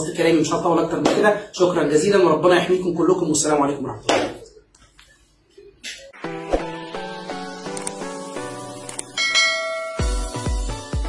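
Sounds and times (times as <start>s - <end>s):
bell chime sound effect: 9.2s - 10.5s.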